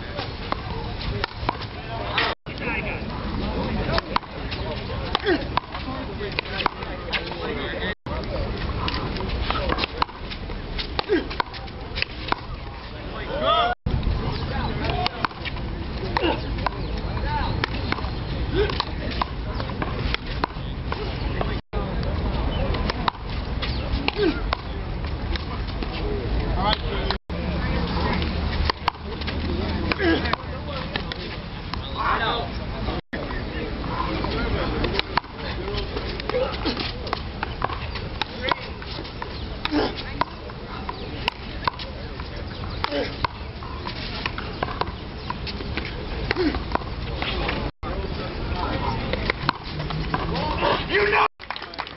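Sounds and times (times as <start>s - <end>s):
spectators chattering: 0.0s - 51.9s
steady low rumble: 13.9s - 14.9s.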